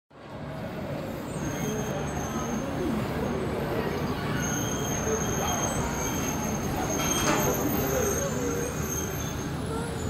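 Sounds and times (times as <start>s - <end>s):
monorail train rumbling: 0.1s - 10.0s.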